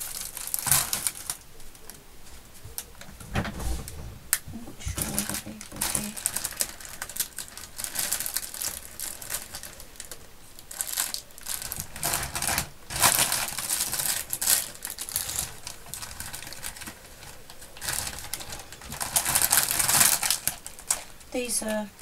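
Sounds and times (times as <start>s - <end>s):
plastic bag crinkling: 0.0s - 22.0s.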